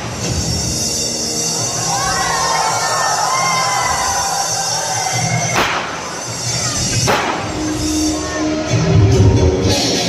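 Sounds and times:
audience shouting and cheering: 0.0s - 10.0s
background music: 0.0s - 10.0s.

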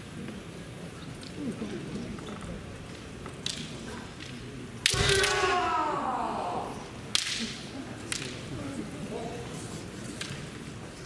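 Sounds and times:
bamboo sword strike crack: 4.8s - 5.7s
person shouting: 4.9s - 6.8s.

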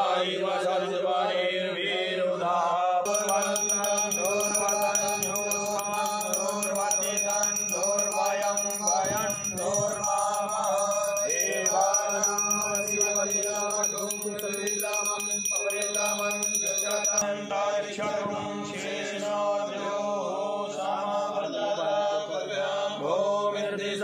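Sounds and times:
men chanting together: 0.0s - 24.0s
high steady ringing: 3.1s - 17.4s.

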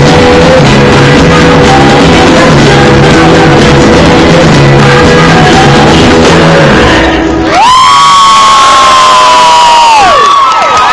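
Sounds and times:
crowd cheering: 7.3s - 10.9s.

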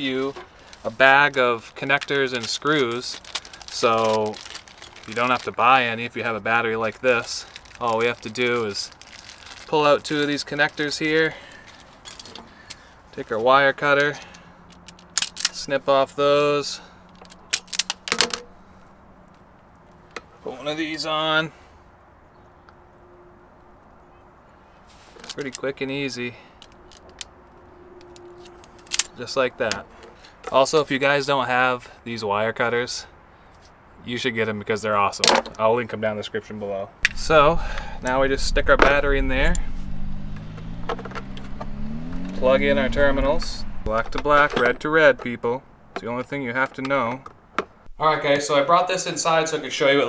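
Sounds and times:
faint handling of wires: 0.0s - 15.6s, 24.8s - 25.7s
low mechanical drone: 37.0s - 45.0s.

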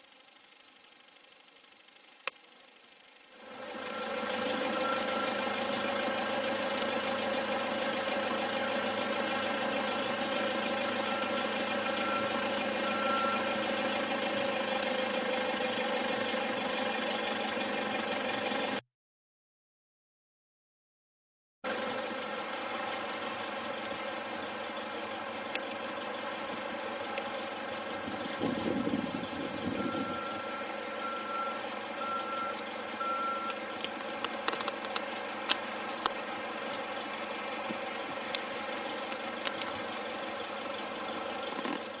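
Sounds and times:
short high beeps: 29.7s - 33.6s.

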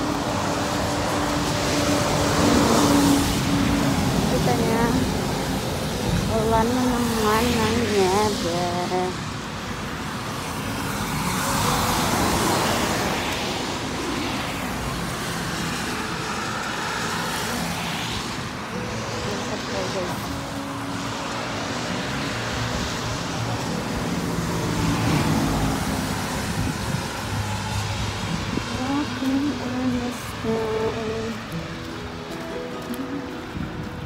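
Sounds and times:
cars passing by: 0.0s - 34.0s.

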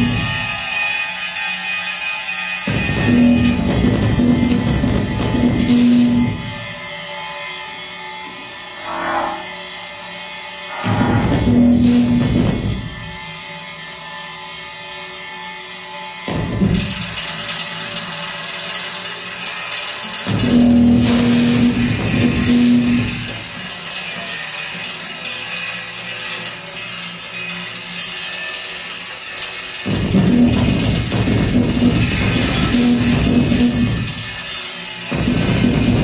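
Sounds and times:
noisy electronic texture: 0.0s - 0.7s, 2.7s - 13.4s, 20.2s - 23.7s, 29.8s - 36.0s
struck and rubbed percussion: 2.7s - 13.2s, 16.2s - 36.0s
steady low tone: 10.7s - 13.1s.

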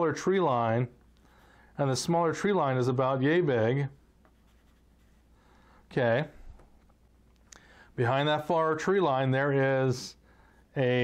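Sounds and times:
pencil scratching on paper: 4.3s - 5.3s.

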